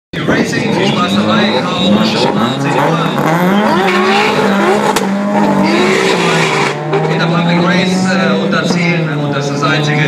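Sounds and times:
drag car engines revving: 0:00.2 - 0:10.0.

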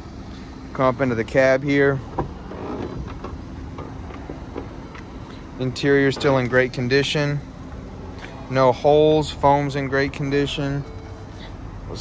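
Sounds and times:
car door swinging open: 0:02.0 - 0:05.2, 0:06.0 - 0:06.6.

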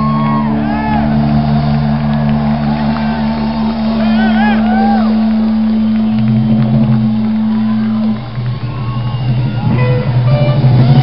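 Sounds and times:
bass notes: 0:00.0 - 0:11.0
crowd shouting: 0:00.0 - 0:11.0
live rock band playing loudly: 0:00.0 - 0:11.0.

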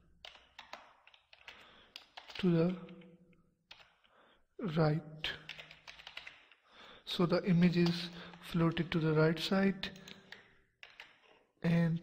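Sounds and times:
keyboard keys clicking: 0:00.2 - 0:03.0, 0:03.7 - 0:04.0, 0:05.5 - 0:06.6, 0:10.0 - 0:11.2.

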